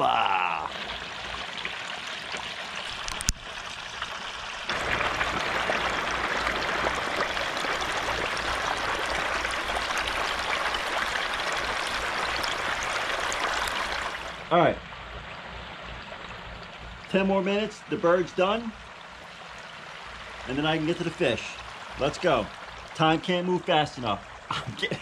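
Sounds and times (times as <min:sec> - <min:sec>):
hot oil bubbling and sizzling: 0:00.0 - 0:25.0.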